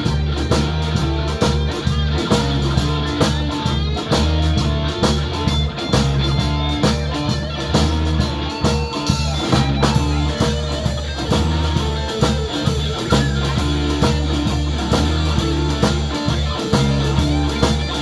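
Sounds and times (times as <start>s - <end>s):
drum kit beat: 0.0s - 18.0s
electric guitar: 0.0s - 18.0s.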